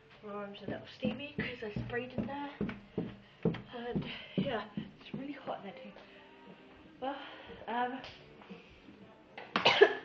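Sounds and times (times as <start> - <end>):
girl coughing: 9.6 - 10.0.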